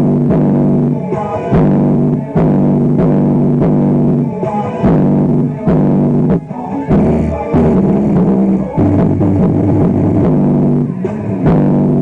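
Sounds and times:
electric bass guitar low notes: 0.0 - 12.0.

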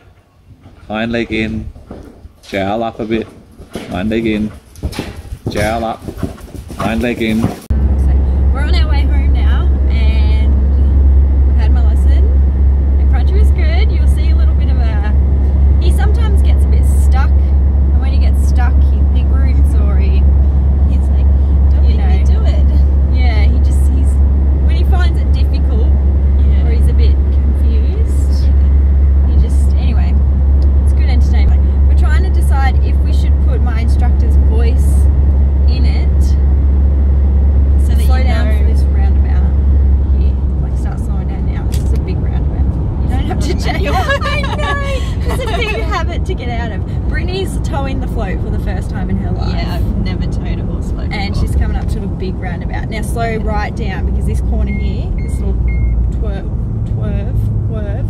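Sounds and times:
car road and engine drone: 0.0 - 58.0
people talking: 0.9 - 1.7, 2.5 - 4.6, 5.5 - 6.0, 6.8 - 10.7, 11.6 - 12.4, 13.0 - 15.2, 15.8 - 20.2, 20.9 - 28.6, 29.3 - 30.2, 30.9 - 35.1, 35.7 - 36.4, 37.8 - 58.0.

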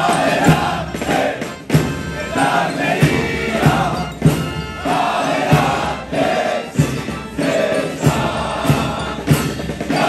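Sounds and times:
bass drum beat: 0.0 - 7.3
marching band playing a march: 0.0 - 10.0.

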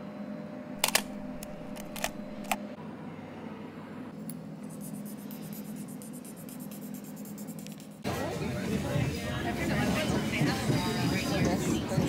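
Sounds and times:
low platform hum: 0.0 - 12.0.

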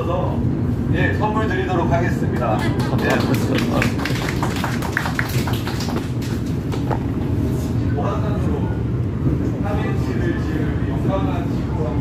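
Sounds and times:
train carriage rumble: 0.0 - 12.0.

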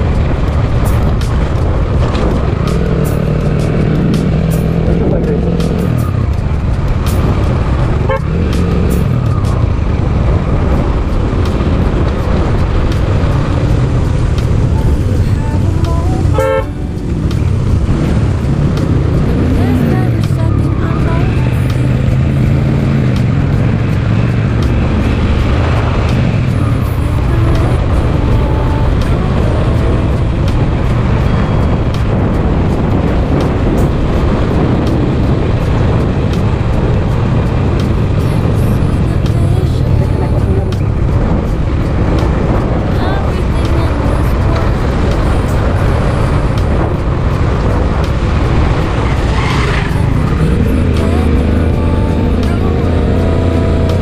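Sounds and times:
motorcycle engine running: 0.0 - 54.0
road and wind noise: 0.0 - 54.0
horn toot: 8.0 - 9.0, 16.3 - 16.9.

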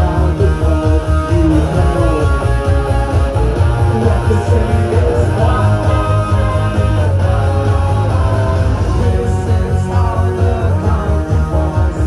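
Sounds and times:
bass: 0.0 - 12.0
driving drum beat: 0.0 - 12.0
electric guitar: 0.0 - 12.0.

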